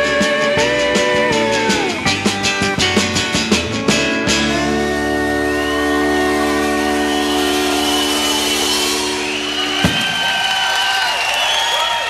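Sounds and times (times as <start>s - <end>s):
rock band chord: 0.0s - 10.0s
audience cheering and whistling: 5.3s - 12.0s.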